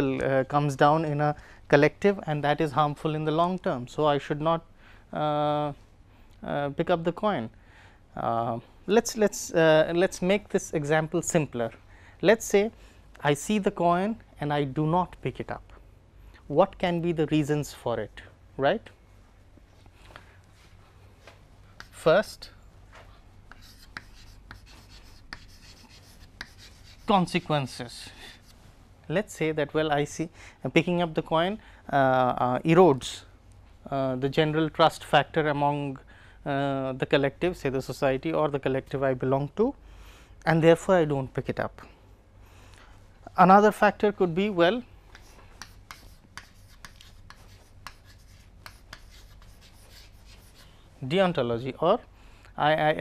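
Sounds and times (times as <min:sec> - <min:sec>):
chalk tapping on board: 0:21.8 - 0:22.0, 0:23.5 - 0:27.4, 0:45.1 - 0:50.6
chalk scratching on chalkboard: 0:21.8 - 0:22.4, 0:23.5 - 0:27.5, 0:28.2 - 0:28.6, 0:45.1 - 0:50.7.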